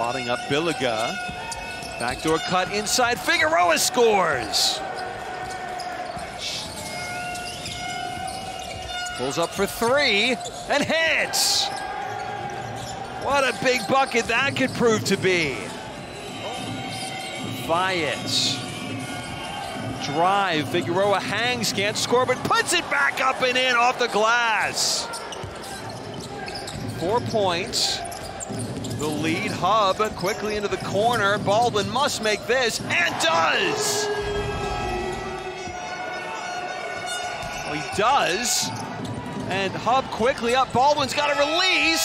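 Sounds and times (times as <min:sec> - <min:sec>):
high shoe squeaks: 0:00.0 - 0:03.7, 0:04.8 - 0:20.2, 0:24.6 - 0:39.5
arena crowd noise: 0:00.0 - 0:42.0
basketball bouncing: 0:28.0 - 0:32.0.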